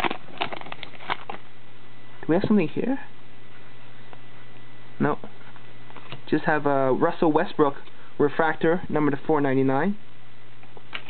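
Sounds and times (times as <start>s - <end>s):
foil wrapper crinkling: 0.0s - 1.4s.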